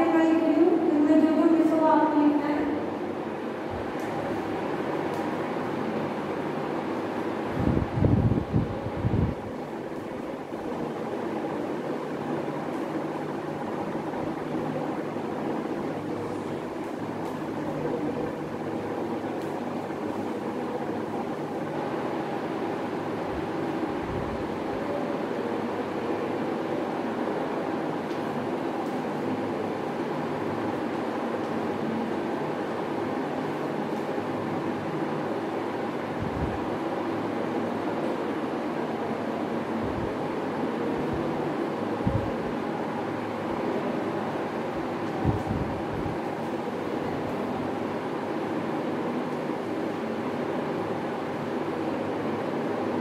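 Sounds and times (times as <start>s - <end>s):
steady mechanical hum: 0.0s - 53.0s.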